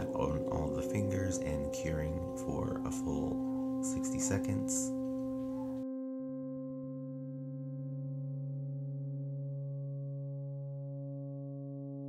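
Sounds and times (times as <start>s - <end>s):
electronic drone music: 0.0s - 12.0s
guitar: 0.0s - 12.0s.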